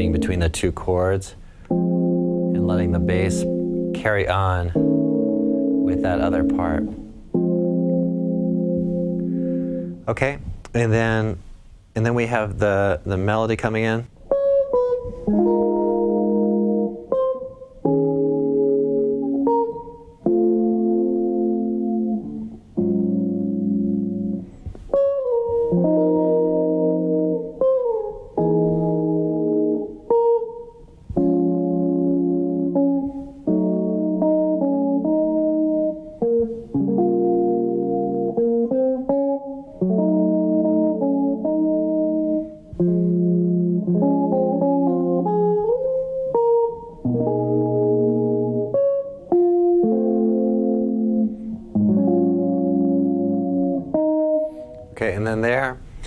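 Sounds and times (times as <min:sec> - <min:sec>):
electric guitar jazz chords: 0:00.0 - 0:56.0.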